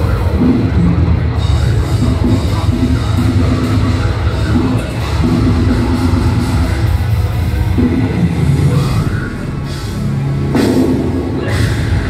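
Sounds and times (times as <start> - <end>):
deathcore band playing live: 0.0 - 12.0.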